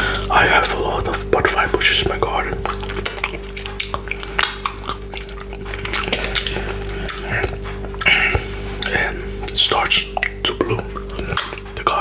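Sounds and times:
steady low hum: 0.0s - 12.0s
fingers being licked: 2.0s - 11.9s.

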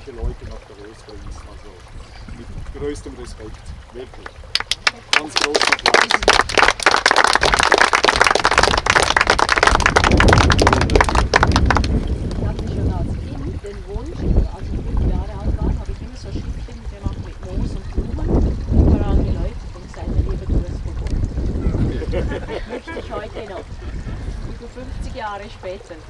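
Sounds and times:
wind rumbling on microphone: 0.0s - 26.0s
small group clapping: 4.2s - 12.7s.

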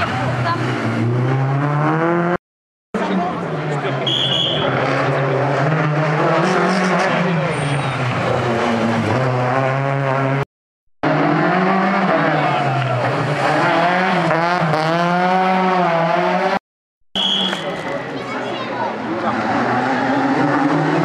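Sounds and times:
rally car engines revving: 0.0s - 2.4s, 3.0s - 16.6s, 17.4s - 21.0s.

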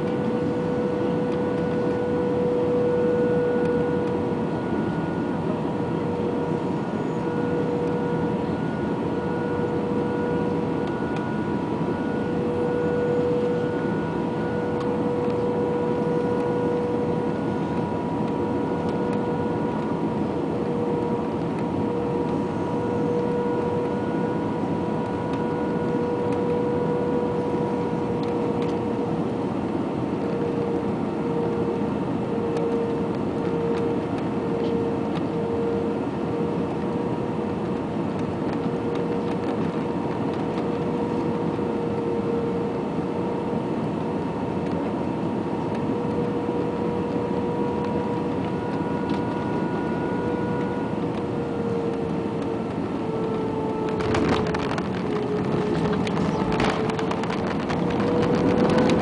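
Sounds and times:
constant droning hum: 0.0s - 59.0s
engine and airflow rush: 0.0s - 59.0s.

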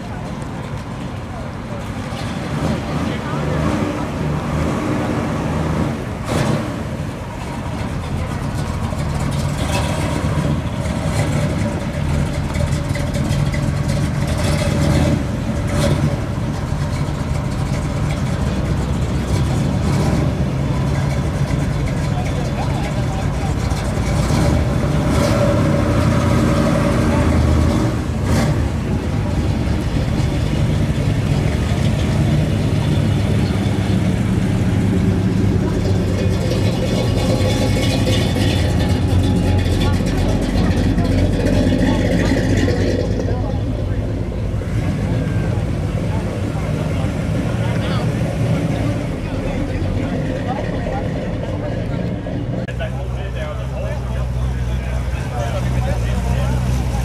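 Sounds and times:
car engine idling: 0.0s - 4.5s, 5.3s - 57.0s.

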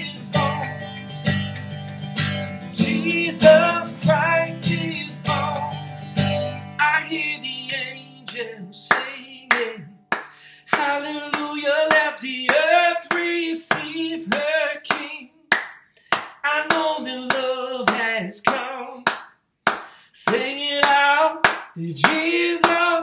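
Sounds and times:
man singing: 0.0s - 1.0s, 2.7s - 6.0s, 6.6s - 15.5s, 16.4s - 19.1s, 20.1s - 23.0s
hand clapping: 8.3s - 23.0s.

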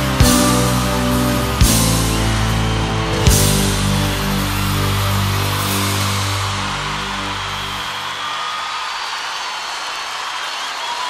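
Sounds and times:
live band sustained chord: 0.0s - 8.3s.

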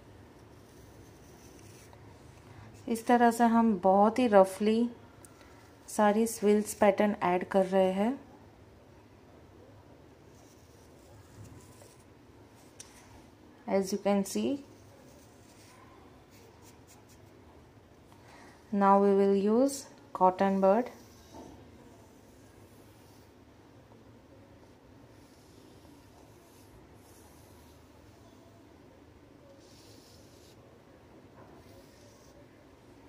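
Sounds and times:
woman speaking: 2.9s - 5.0s, 5.9s - 8.3s, 13.6s - 14.7s, 18.7s - 21.0s
fingertips scratching powder: 25.1s - 28.4s, 29.6s - 30.6s, 31.6s - 32.5s.

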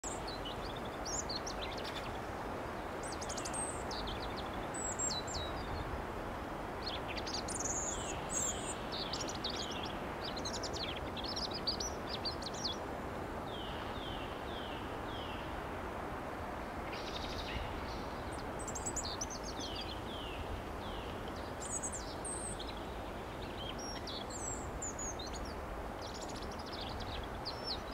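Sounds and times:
songbirds singing: 0.0s - 27.9s.

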